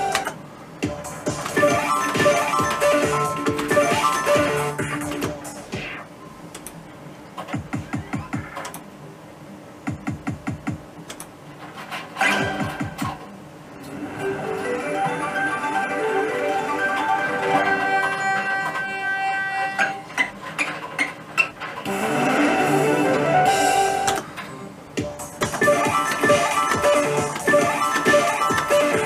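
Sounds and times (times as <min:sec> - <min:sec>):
slot machine ticking: 0:01.3 - 0:05.2, 0:14.4 - 0:19.0, 0:25.5 - 0:29.0.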